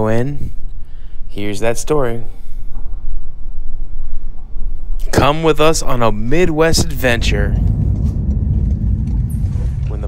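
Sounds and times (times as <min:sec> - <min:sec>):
car road noise rumble: 0:06.7 - 0:10.0.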